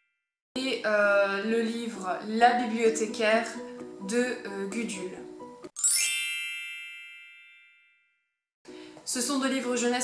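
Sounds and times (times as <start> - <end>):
bell-like chime: 5.8 - 8.2.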